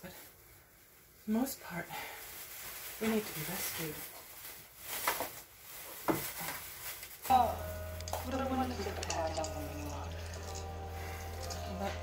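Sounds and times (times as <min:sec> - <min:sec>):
plastic cling wrap crinkling: 0:00.0 - 0:12.0.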